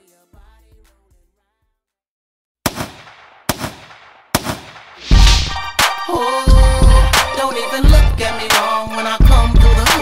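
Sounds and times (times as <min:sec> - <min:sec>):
gunshot sound effects: 0:02.7 - 0:05.8.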